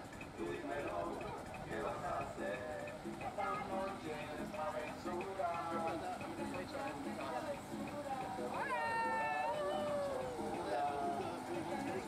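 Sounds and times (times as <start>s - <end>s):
people talking: 0.4s - 12.0s.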